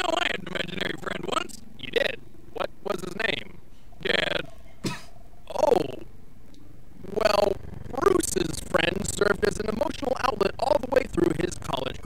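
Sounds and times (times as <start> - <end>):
voices speaking: 0.0 - 6.1, 7.0 - 12.0
low steady hum: 0.0 - 12.0.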